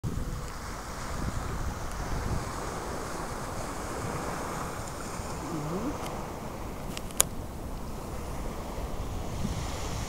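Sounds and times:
surf on sandy beach: 0.0 - 10.0
wind buffeting microphone: 0.0 - 10.0.

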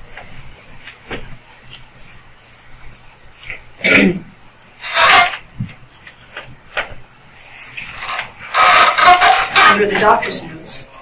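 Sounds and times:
person speaking indistinctly: 9.5 - 11.0.

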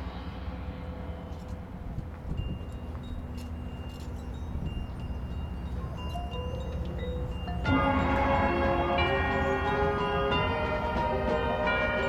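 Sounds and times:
sustained bell-like percussion tones: 0.1 - 12.0.

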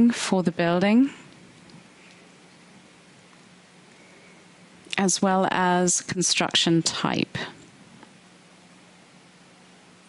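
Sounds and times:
faint low hum: 0.0 - 10.0
background hiss: 1.0 - 6.5.

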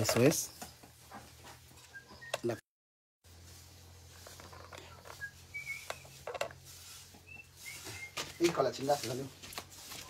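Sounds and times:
small bird chirping: 1.8 - 2.6, 4.2 - 6.3.

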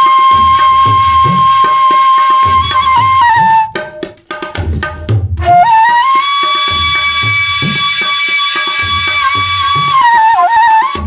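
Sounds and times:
bamboo flute melody: 0.0 - 4.1, 5.4 - 11.0
low tabla strokes: 0.0 - 11.0.

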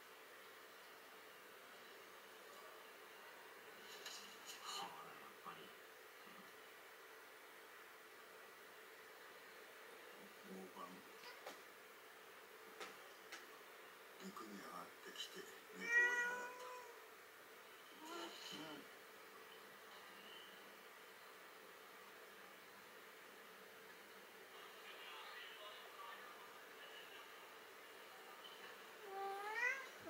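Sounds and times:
cat meowing: 15.8 - 17.0, 29.0 - 30.0
soft voice-like murmurs: 17.9 - 19.0, 24.5 - 30.0.

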